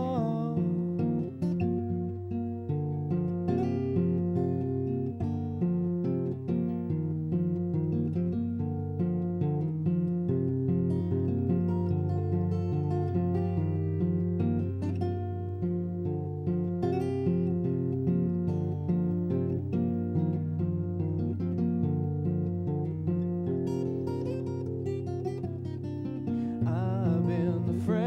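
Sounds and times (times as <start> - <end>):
fingerpicked acoustic guitar: 0.0 - 28.0.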